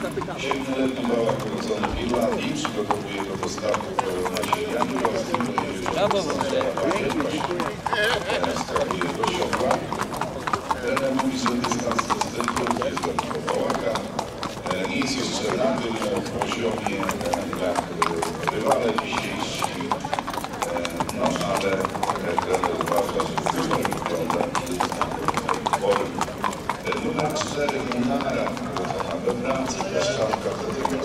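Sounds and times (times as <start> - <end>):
hooves clip-clopping on hard path: 0.0 - 31.0
people talking: 0.0 - 31.0.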